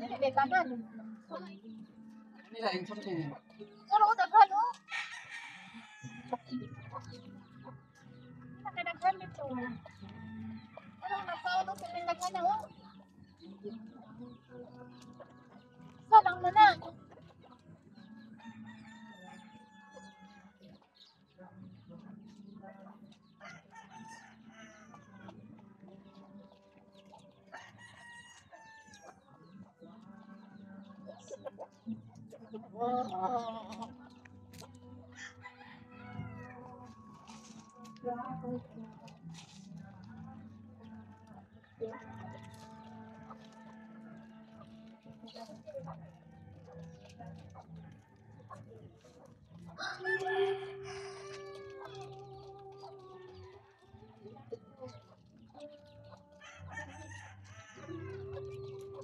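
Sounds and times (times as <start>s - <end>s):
chickens clucking: 0.0s - 59.0s
rooster crowing: 4.9s - 6.6s, 49.8s - 51.9s, 56.3s - 58.4s.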